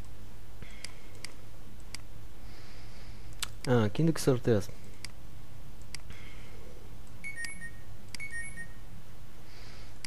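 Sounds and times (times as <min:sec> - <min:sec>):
low electrical hum: 0:00.0 - 0:10.0
electronic beeps: 0:07.2 - 0:08.8.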